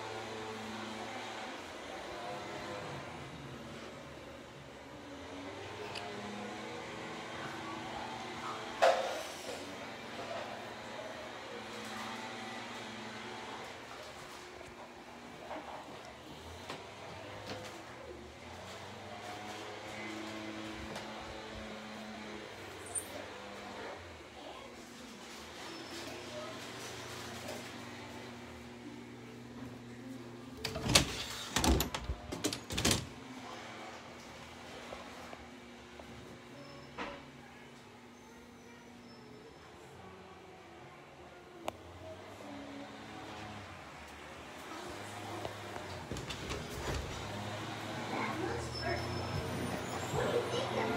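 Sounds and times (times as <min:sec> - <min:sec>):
indistinct voices: 0:41.6 - 0:50.9.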